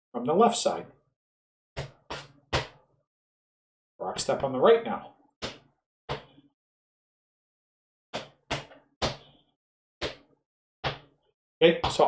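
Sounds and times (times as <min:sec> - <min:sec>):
shoes striking concrete floor: 0:01.8 - 0:02.8.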